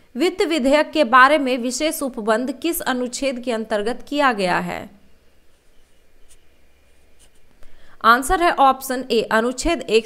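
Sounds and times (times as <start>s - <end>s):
stylus scratching on tablet: 5.5s - 7.5s.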